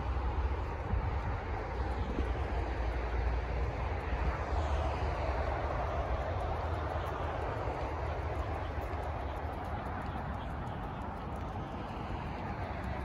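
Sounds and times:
outdoor background noise: 0.0s - 13.0s.

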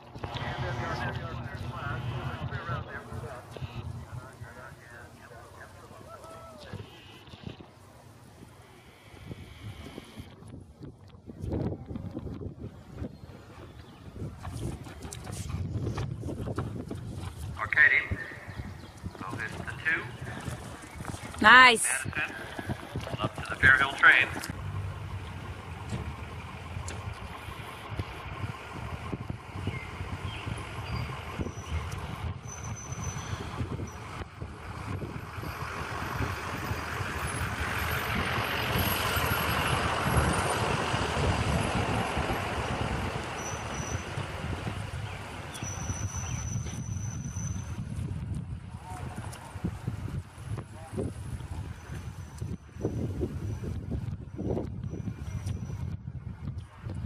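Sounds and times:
outdoor rumble: 0.0s - 57.0s.

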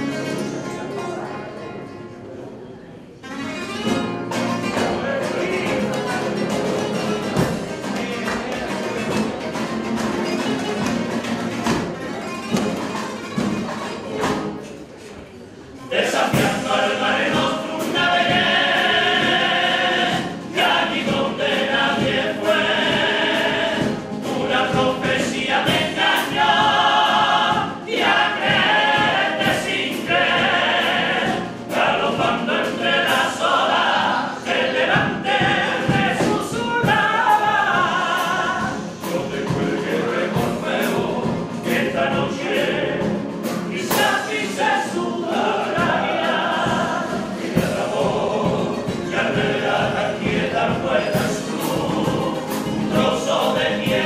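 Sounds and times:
strummed guitars: 0.0s - 2.3s, 3.2s - 14.9s, 15.7s - 54.0s
male chorus singing: 4.8s - 9.0s, 15.9s - 54.0s.

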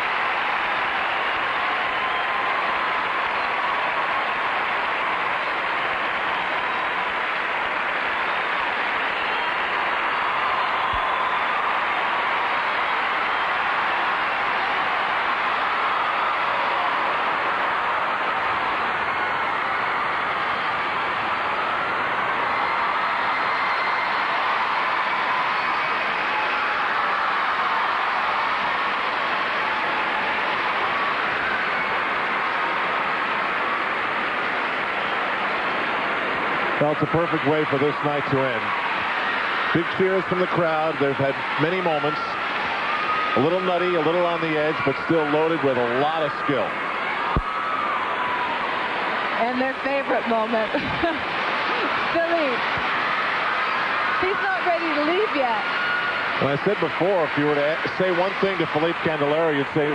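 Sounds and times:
crowd applauding and cheering: 0.0s - 59.9s.

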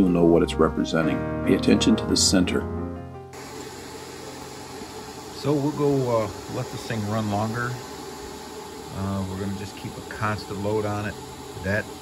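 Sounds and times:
background music: 0.0s - 3.4s
room noise hiss: 3.3s - 12.0s
low hum: 3.4s - 12.0s.

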